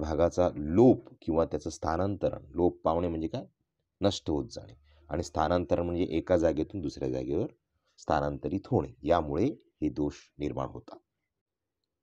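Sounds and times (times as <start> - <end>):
narrator speaking: 0.0 - 11.0.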